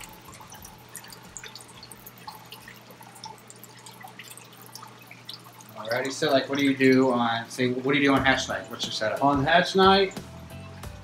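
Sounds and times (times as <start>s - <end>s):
water dripping and trickling: 0.0s - 11.0s.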